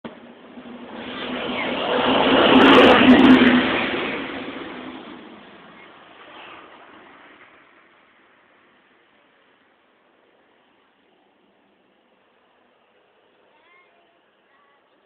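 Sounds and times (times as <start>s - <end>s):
vehicle passing by: 0.4s - 7.9s.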